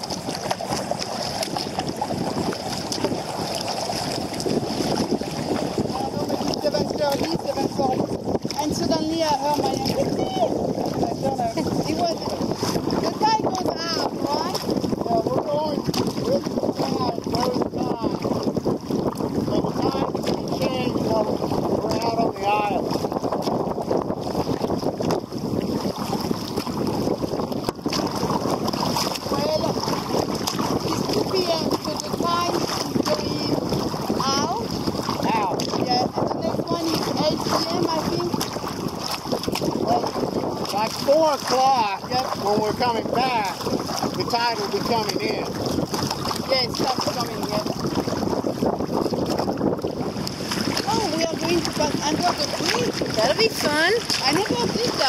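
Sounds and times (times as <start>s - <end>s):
water washing against hull: 0.0s - 55.0s
wind buffeting microphone: 0.0s - 55.0s.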